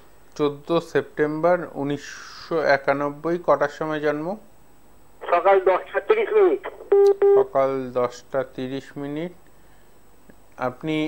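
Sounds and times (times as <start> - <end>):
voice on telephone line: 5.2 - 7.6
telephone beeps: 6.9 - 7.5.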